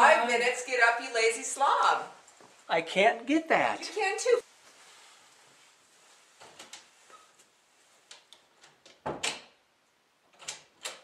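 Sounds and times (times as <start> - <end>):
door clicks and knocks: 8.6 - 9.6.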